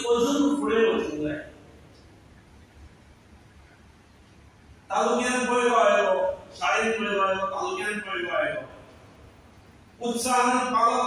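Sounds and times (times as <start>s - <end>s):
man speaking into a microphone: 0.0s - 1.6s, 4.9s - 8.9s, 10.0s - 11.0s.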